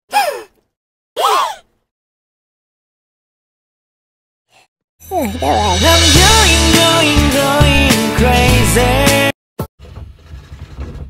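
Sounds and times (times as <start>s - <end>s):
person sighing: 5.1s - 6.1s.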